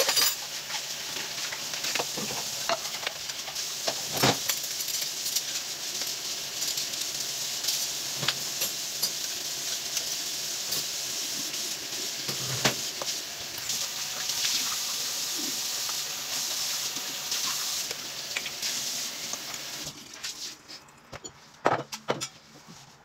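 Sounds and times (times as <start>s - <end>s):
water running in sink: 0.0s - 20.6s
wiping and handling at basin: 19.4s - 21.6s, 22.4s - 23.0s.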